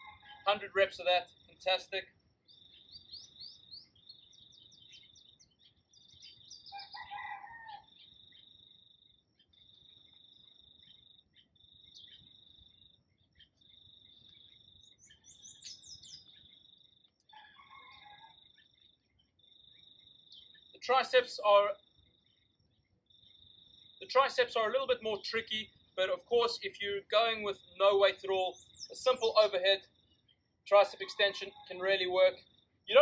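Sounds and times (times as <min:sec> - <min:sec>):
distant rooster crowing: 0:00.0 - 0:00.5, 0:06.7 - 0:08.0, 0:17.3 - 0:18.4
bird chirps: 0:00.0 - 0:33.0.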